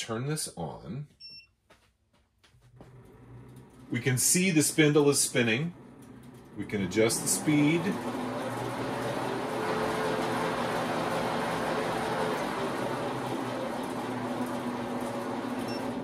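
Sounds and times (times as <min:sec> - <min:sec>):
metal lathe running: 0:03.0 - 0:16.0.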